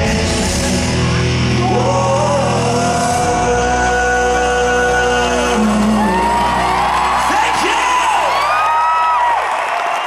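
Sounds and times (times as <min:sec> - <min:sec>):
amplified rock guitars sustaining: 0:00.0 - 0:08.1.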